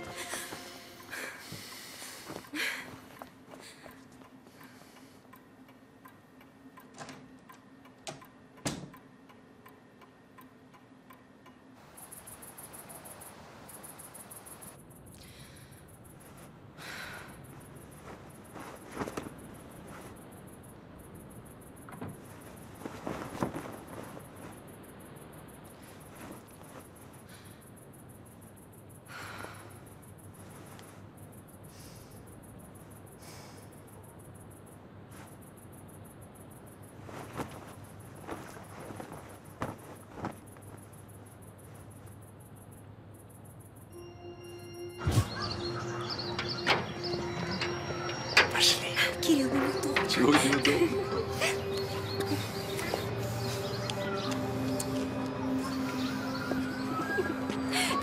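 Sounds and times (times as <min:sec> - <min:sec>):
film music: 0:00.0 - 0:02.3, 0:43.9 - 0:58.0.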